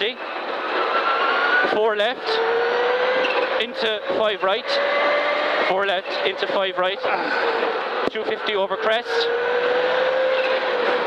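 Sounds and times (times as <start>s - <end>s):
road and tyre noise: 0.0s - 11.0s
rally car engine from cabin: 0.8s - 11.0s.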